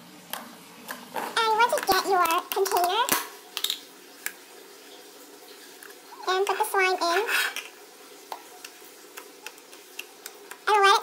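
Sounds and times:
person speaking: 1.2s - 3.2s, 6.1s - 7.6s, 10.5s - 11.0s.

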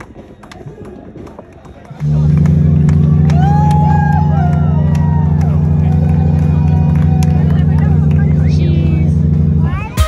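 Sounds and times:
voices: 0.0s - 10.0s
loud low drone: 1.9s - 10.0s.

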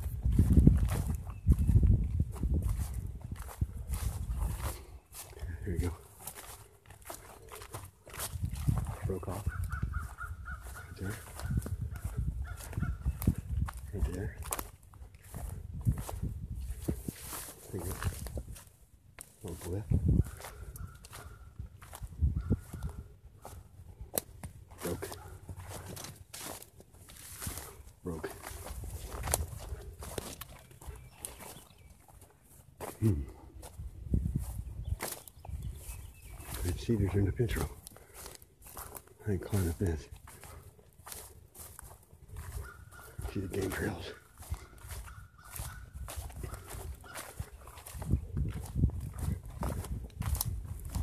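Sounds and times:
footsteps through dry grass: 0.0s - 51.0s
stems and twigs rustling: 0.0s - 51.0s.

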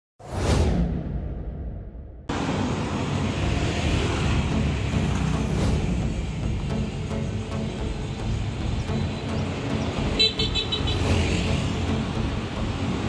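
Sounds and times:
road traffic noise: 2.3s - 13.0s.

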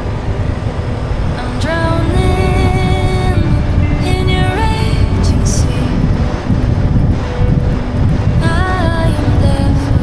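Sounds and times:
faint music: 0.0s - 10.0s
road noise: 0.0s - 10.0s
wind buffeting microphone: 0.0s - 10.0s.

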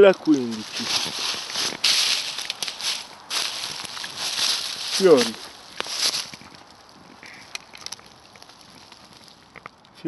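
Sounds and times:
rustling dry leaves: 0.0s - 10.0s.

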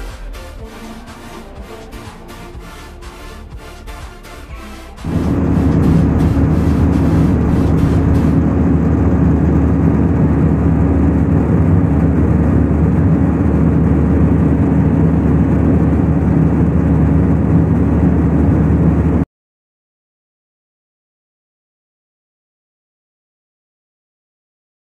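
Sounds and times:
low hum: 0.0s - 19.3s
airliner cabin engine rush: 5.0s - 19.2s.

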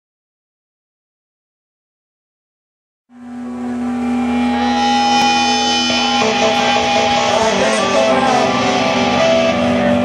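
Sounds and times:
sustained electric guitar note: 3.1s - 10.0s.

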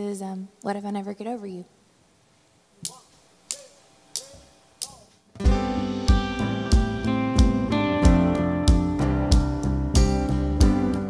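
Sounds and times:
drumstick clicks: 2.8s - 5.2s.

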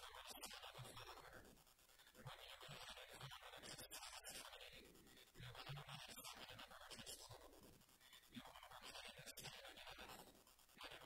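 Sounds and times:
scratchy hiss: 0.0s - 11.0s.

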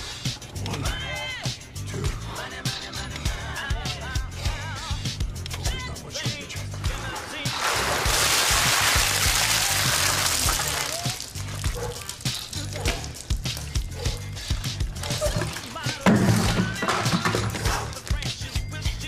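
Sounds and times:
music with bass beat: 0.0s - 19.0s
water pouring from jug: 7.2s - 13.6s, 14.8s - 18.1s.

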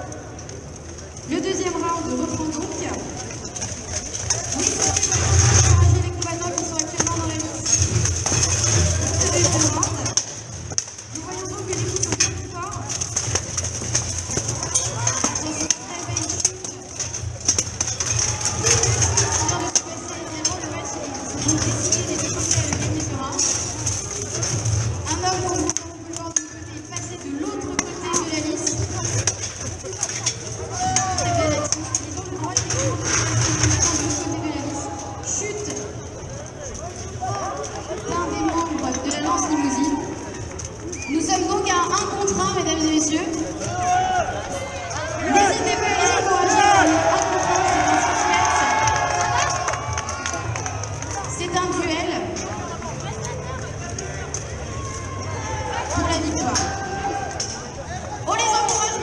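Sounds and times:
steel armour and weapons clanking: 0.1s - 59.0s
people shouting: 17.9s - 21.9s, 43.6s - 50.9s, 54.5s - 57.6s.

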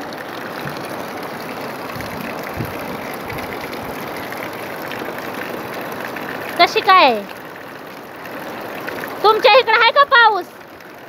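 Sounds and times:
heavy rain pouring: 0.0s - 11.0s
low thuds: 1.8s - 4.2s
strong wind: 1.9s - 4.0s.

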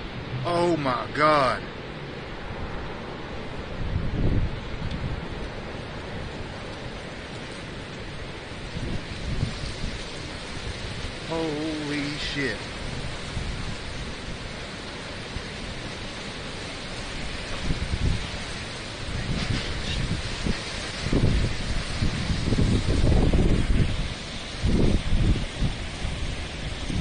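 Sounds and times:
storm wind and rain: 0.0s - 27.0s
wind gusts buffeting microphone: 0.0s - 27.0s.

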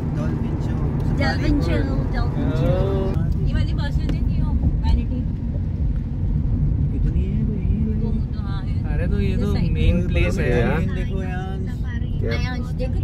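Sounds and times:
voices: 0.0s - 5.3s, 8.0s - 13.0s
car driving rumble from inside: 0.0s - 13.0s.

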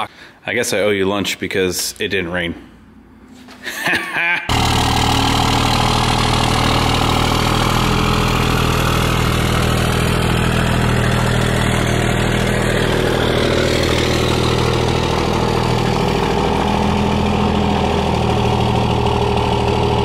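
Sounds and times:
truck engine idling: 4.5s - 20.0s.

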